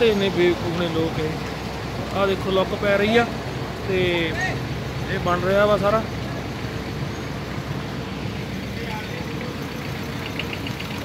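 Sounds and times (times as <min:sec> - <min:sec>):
heavy vehicle engine rumbling: 0:00.0 - 0:11.0.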